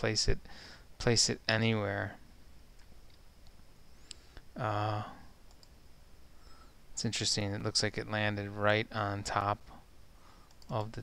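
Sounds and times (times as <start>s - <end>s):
faint computer mouse clicks: 5.5s - 5.8s.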